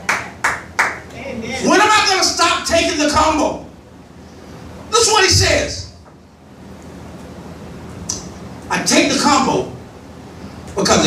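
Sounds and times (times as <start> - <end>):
sharp hand claps: 0.0 - 1.1
man speaking: 8.7 - 9.8.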